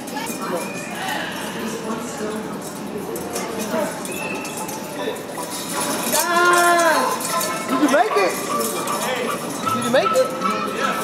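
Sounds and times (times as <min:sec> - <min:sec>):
indistinct echoing voices: 0:00.0 - 0:11.0.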